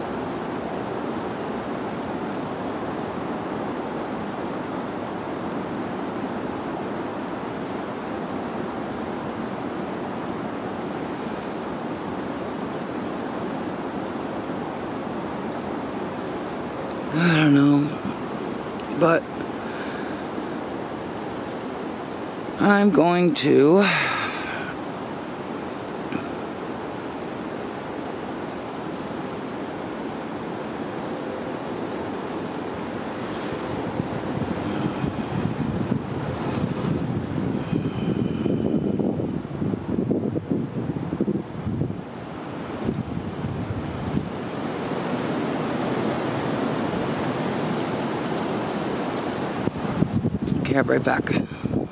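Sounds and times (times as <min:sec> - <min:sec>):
wind rushing over microphone: 0:00.0 - 0:51.9.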